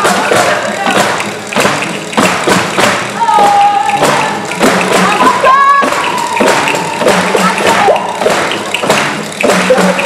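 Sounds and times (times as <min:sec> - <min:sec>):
orchestra playing folk music: 0:00.0 - 0:10.0
percussion and stomping: 0:00.0 - 0:10.0.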